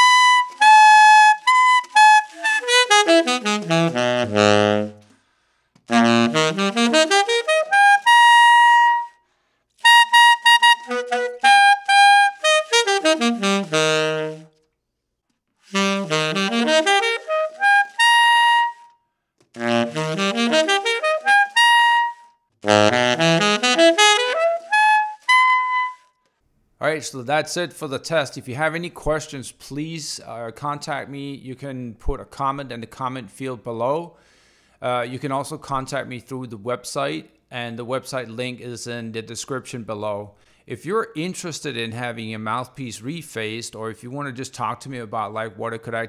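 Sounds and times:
tenor saxophone runs: 0.0s - 5.2s, 5.9s - 9.1s, 9.8s - 14.6s, 15.7s - 18.8s, 19.6s - 26.0s.

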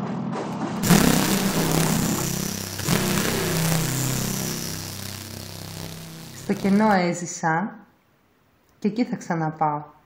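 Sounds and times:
low droning tones: 0.8s - 7.0s
harsh hiss: 0.8s - 7.1s.

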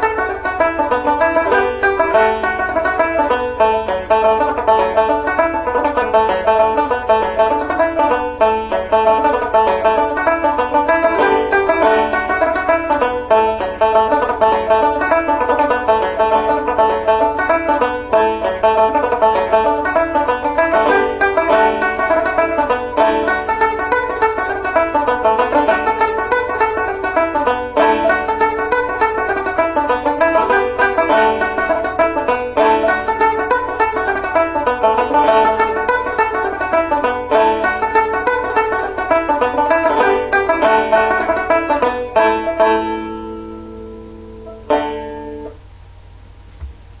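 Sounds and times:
banjo picking a fast tune: 0.0s - 45.6s.

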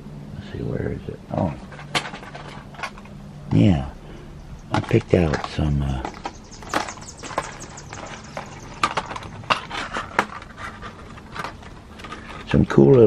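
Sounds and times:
small objects clicking and knocking: 4.7s - 13.0s.

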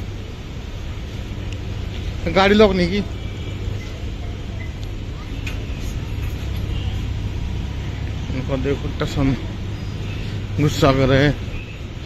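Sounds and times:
low rumble of road traffic: 0.0s - 12.0s.

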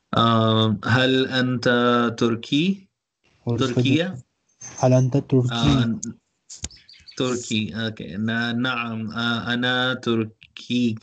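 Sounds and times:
man speaking slow drawn-out words: 0.2s - 2.8s, 3.5s - 4.2s, 4.8s - 6.1s, 7.2s - 11.0s.

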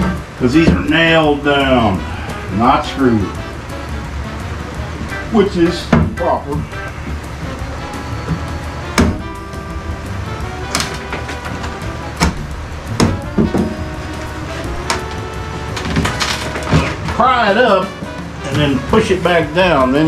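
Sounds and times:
background music: 0.0s - 20.0s
pry bar knocking wooden panels: 10.7s - 13.8s.

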